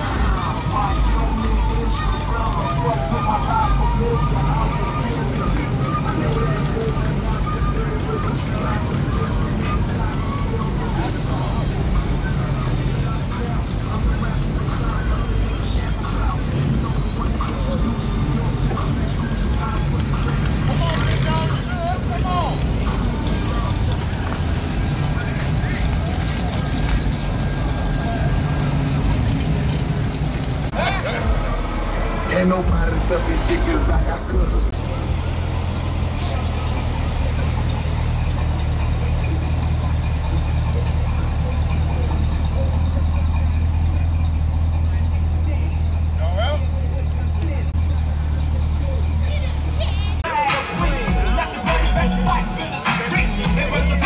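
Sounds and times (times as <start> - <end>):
music from car stereo: 0.0 - 25.8, 30.7 - 35.6, 50.2 - 54.0
cars rolling past slowly: 0.0 - 54.0
crowd chatter: 0.0 - 54.0.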